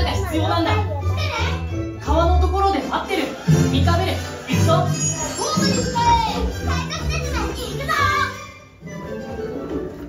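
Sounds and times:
orchestral background music: 0.0 - 10.0.

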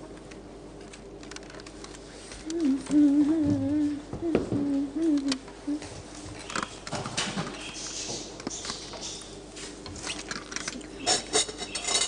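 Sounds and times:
person humming a tune: 2.4 - 6.0.

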